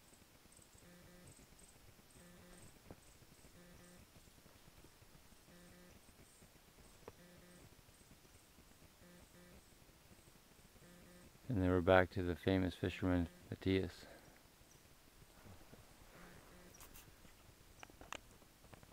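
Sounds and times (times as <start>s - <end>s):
faint soft sounds: 0.0s - 18.9s.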